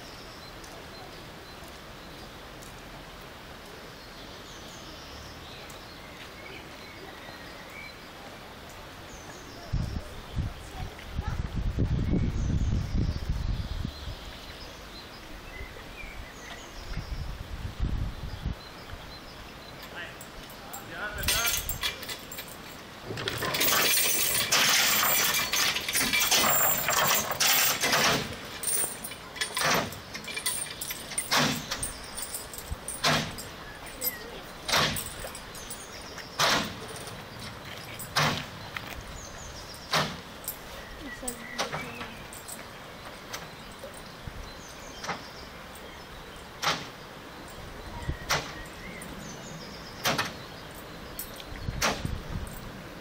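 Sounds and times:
steel cable rattling and clinking: 20.2 - 38.4, 39.7 - 42.7.

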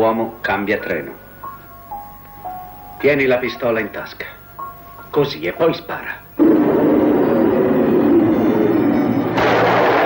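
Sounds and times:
subway train rumbling: 6.4 - 10.0.

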